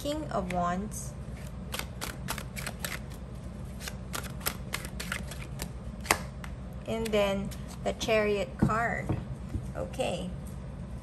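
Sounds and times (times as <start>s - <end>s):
cards being shuffled: 1.3s - 6.5s.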